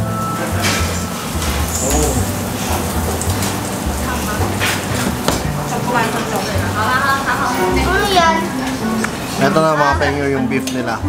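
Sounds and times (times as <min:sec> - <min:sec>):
diners talking: 0:00.0 - 0:11.0
music playing: 0:00.0 - 0:11.0.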